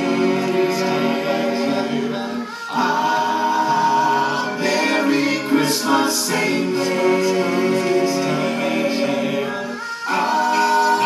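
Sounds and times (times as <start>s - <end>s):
male a cappella group singing: 0.0s - 11.0s.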